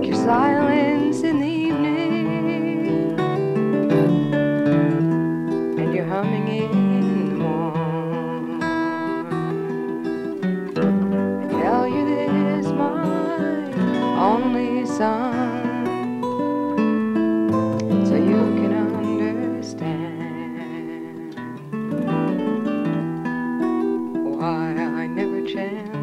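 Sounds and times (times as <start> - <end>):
sliding melody line: 0.0 - 23.1
acoustic guitar playing: 0.0 - 26.0.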